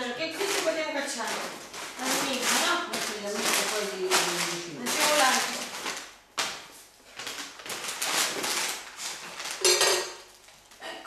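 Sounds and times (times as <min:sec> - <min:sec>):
kitchenware clattering and scraping: 0:09.5 - 0:10.3.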